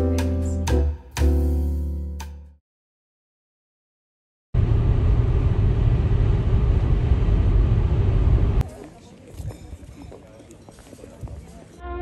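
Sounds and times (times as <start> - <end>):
car road noise rumble: 4.6 - 8.6.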